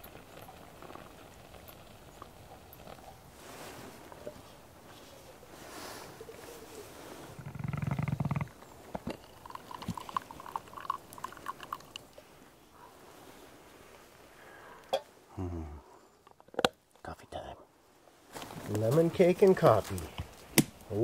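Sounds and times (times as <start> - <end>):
coffee plunger groaning: 7.4 - 12.1.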